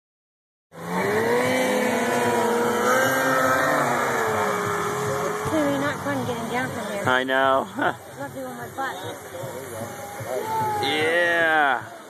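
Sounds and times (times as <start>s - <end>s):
engine running steadily: 0.8s - 12.0s.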